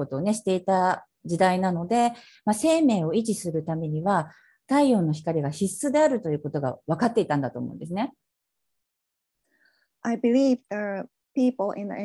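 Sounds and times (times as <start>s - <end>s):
woman speaking: 0.0s - 8.2s.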